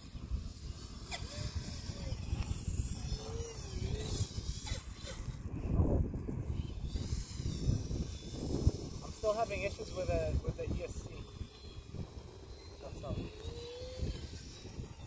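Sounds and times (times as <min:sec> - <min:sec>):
model plane motor droning: 0:00.0 - 0:15.0
wind gusting on microphone: 0:00.0 - 0:15.0.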